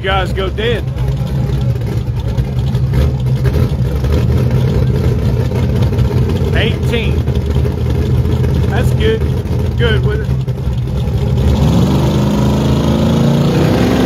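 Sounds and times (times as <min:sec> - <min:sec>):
drag car engines idling: 0:00.0 - 0:13.5.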